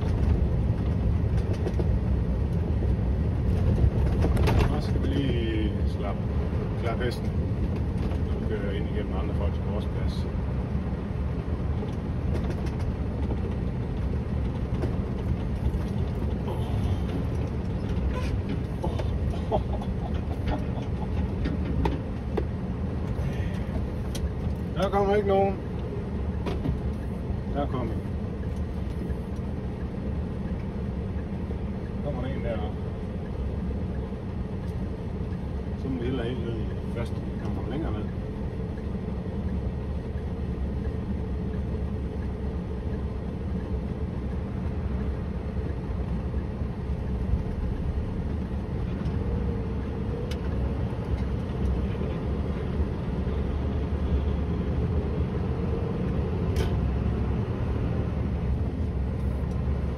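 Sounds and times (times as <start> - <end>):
truck engine running: 0.0 - 59.9.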